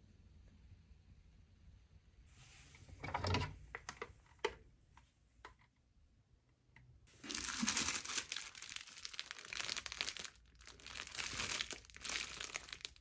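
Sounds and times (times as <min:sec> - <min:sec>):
plastic wrapping crinkling: 0:07.1 - 0:13.0.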